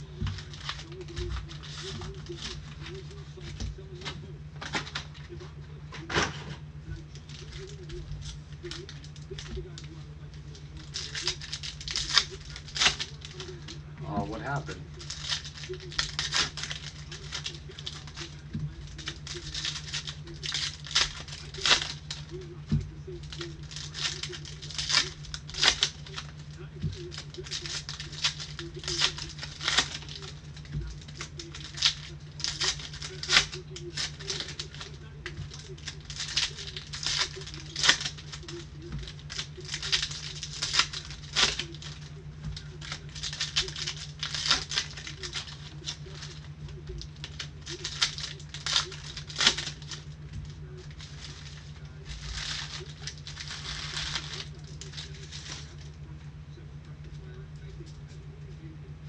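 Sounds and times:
foil wrappers crinkling and tearing: 0.0 - 58.6.

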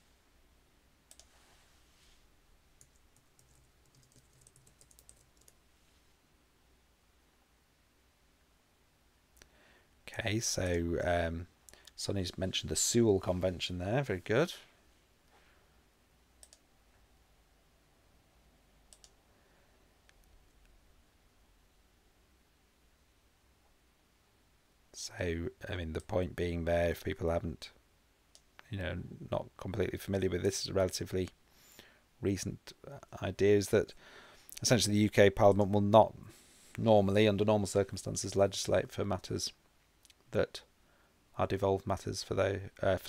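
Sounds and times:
faint room hum: 0.0 - 43.0
typing on computer keyboard: 2.8 - 5.6.

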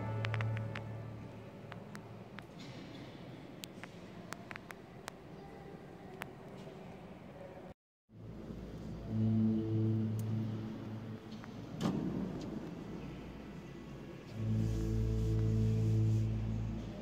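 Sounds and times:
low held musical note: 8.8 - 11.6, 14.3 - 17.0.

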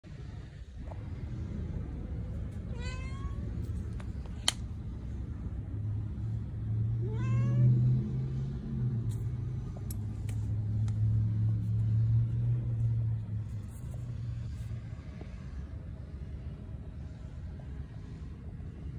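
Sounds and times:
steady low hum: 0.0 - 18.9
cat meowing: 2.7 - 3.4, 7.0 - 7.8.

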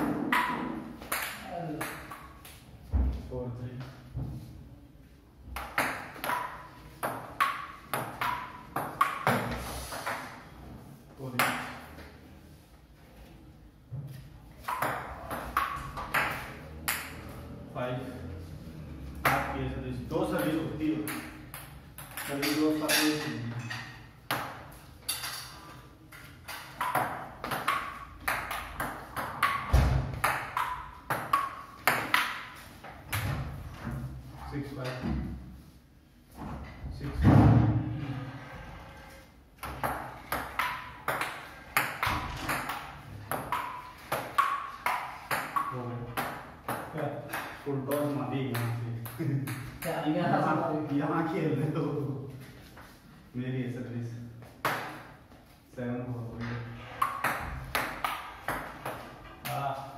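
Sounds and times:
table tennis ball hits: 0.0 - 2.6, 5.5 - 10.4, 11.4 - 12.0, 14.6 - 17.4, 19.2 - 19.6, 20.2 - 22.9, 23.8 - 33.6, 39.6 - 50.0, 54.6 - 55.2, 56.9 - 59.6.

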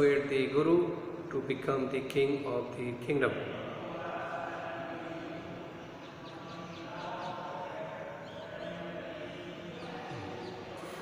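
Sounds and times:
faint distant chanting voices: 0.0 - 11.0.

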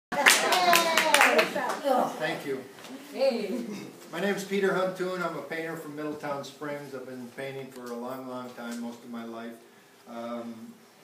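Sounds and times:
small audience clapping: 0.1 - 2.1.

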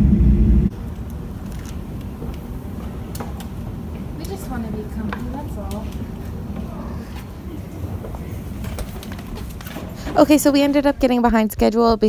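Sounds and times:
escalator rumbling: 0.0 - 12.0.

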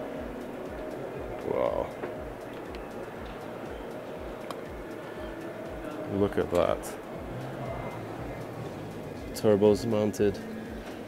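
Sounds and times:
background music with low beat: 0.0 - 11.0
exhibition hall hum: 6.8 - 9.4.

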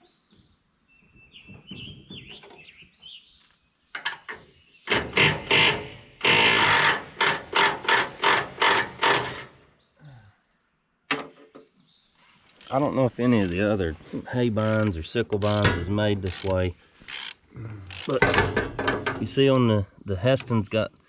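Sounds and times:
birdsong: 0.0 - 6.3, 9.0 - 21.0.

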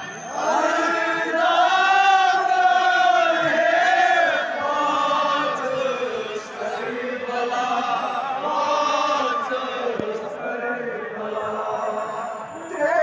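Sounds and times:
men chanting a lament: 0.3 - 13.0.

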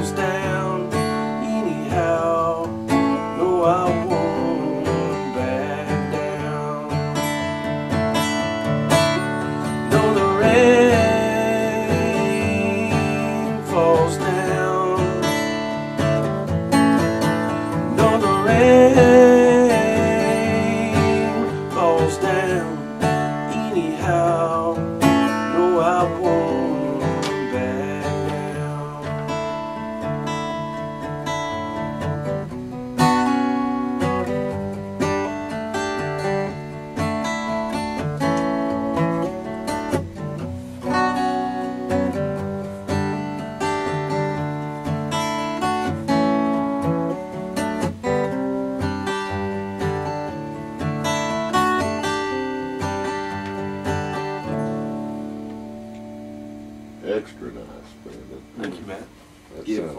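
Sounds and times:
solo acoustic guitar: 0.0 - 59.9.

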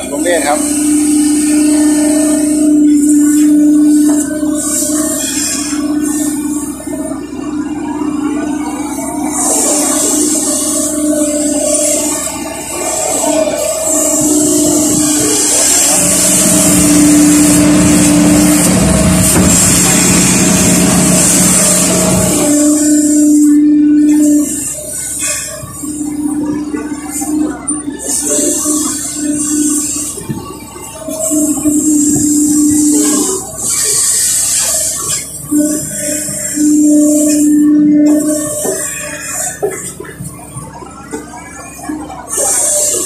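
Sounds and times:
excavator diesel engine under load: 0.0 - 43.0
hydraulic whine: 0.0 - 43.0.

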